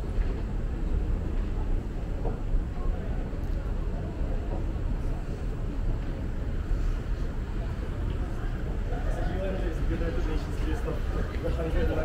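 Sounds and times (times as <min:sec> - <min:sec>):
moving walkway rumble: 0:00.0 - 0:12.0.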